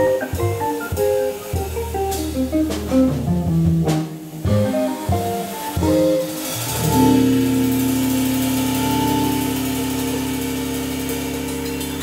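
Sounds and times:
organ and band sustained chord: 4.7s - 12.0s.

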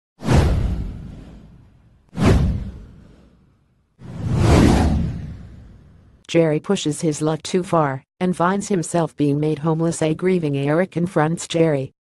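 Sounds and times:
whoosh sound effect: 2.2s - 6.0s
deep rumble: 4.1s - 6.2s.

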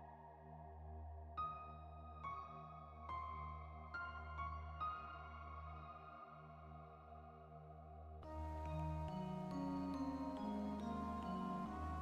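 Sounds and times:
ambient meditation music: 0.0s - 12.0s.

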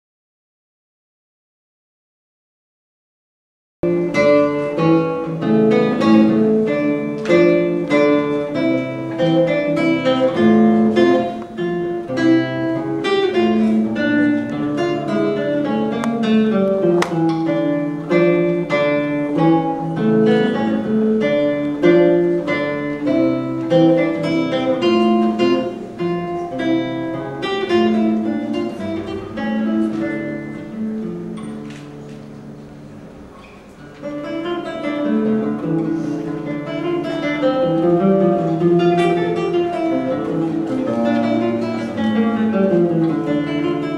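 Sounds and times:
fingerstyle classical guitar: 3.8s - 43.9s.

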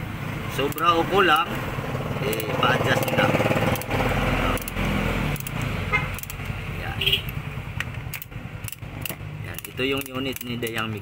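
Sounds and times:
small motorcycle engine running: 1.9s - 4.8s.

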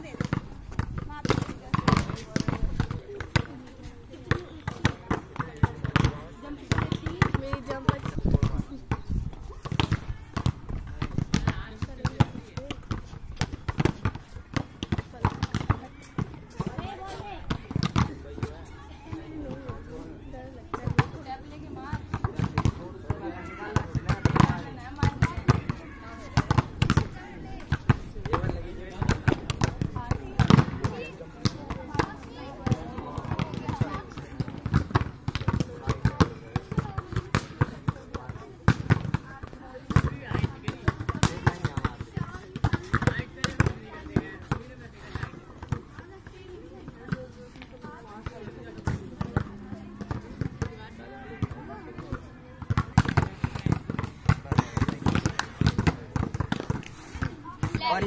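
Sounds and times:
volleyballs smacking and bouncing: 0.0s - 58.0s
people talking: 1.0s - 12.8s, 15.0s - 56.4s.

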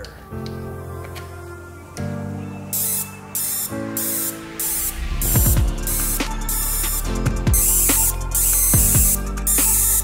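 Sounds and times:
electronic music with beat: 0.9s - 10.0s.

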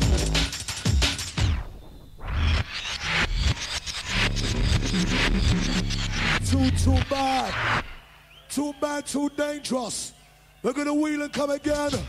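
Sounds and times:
drum and bass music: 0.0s - 8.0s.

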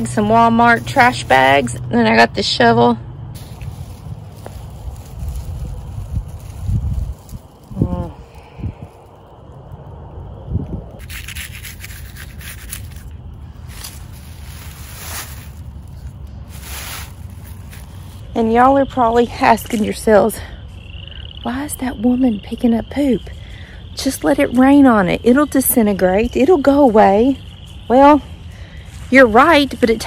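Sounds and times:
low rumble: 0.0s - 18.4s
plastic bag rustling: 3.4s - 9.3s, 11.0s - 18.4s
shovel scraping on grass: 11.0s - 18.2s.

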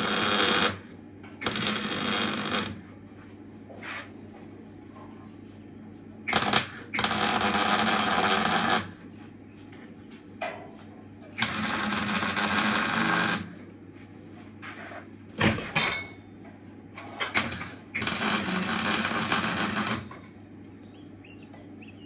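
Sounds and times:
arc welding crackling: 0.0s - 3.0s, 6.3s - 9.1s, 11.4s - 13.7s, 17.2s - 20.2s
welder hum: 0.0s - 3.2s, 6.3s - 9.2s, 11.4s - 13.7s, 17.3s - 20.2s.

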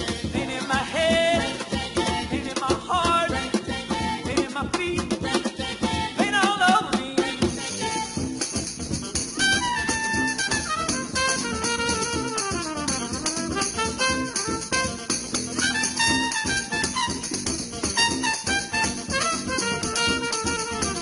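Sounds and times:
electric guitar: 0.0s - 21.0s
jazz band playing: 0.0s - 21.0s
trumpet melody: 9.3s - 21.0s.

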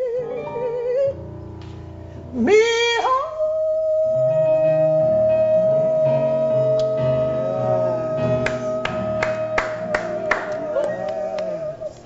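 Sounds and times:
woman singing gospel: 2.3s - 12.0s
keyboard chord: 4.2s - 12.0s.

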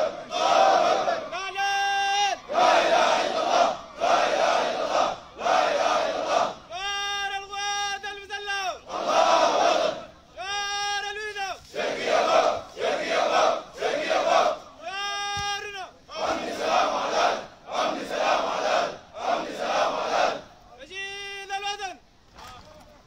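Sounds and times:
soldiers shouting in unison: 0.0s - 20.5s
drawn-out shouted call: 0.0s - 22.1s.

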